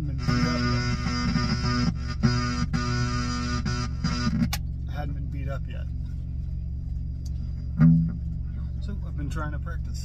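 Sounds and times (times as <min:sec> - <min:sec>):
steady low hum: 0:00.0 - 0:10.0
electric guitar chord: 0:00.2 - 0:04.4.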